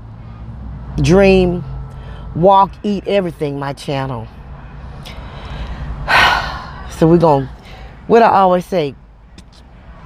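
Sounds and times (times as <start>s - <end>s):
woman's quick gasping breath: 5.1s - 6.8s.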